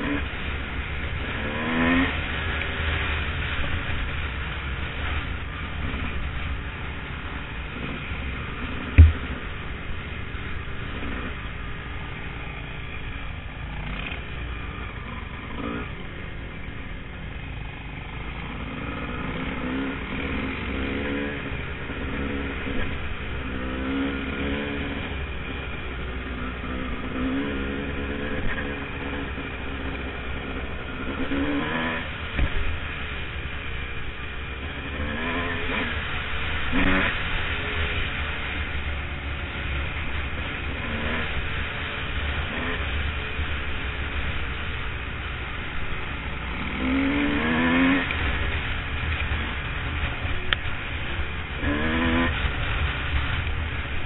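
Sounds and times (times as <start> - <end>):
dirt bike engine revving: 1.2 - 3.6, 7.7 - 9.8, 13.7 - 16.0, 18.4 - 32.6, 34.6 - 44.5, 46.3 - 54.0
sharp knocks: 9.0 - 9.2.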